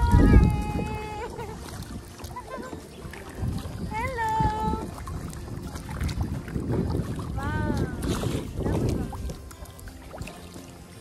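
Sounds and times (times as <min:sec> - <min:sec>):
water sloshing from paddling: 0:00.0 - 0:11.0
wind rumbling on microphone: 0:00.0 - 0:11.0.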